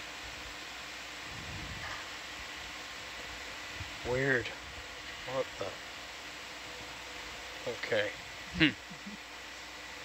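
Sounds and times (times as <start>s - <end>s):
background hiss: 0.0s - 10.0s
faint hum tones: 0.0s - 10.0s
person exclaiming: 8.6s - 9.2s.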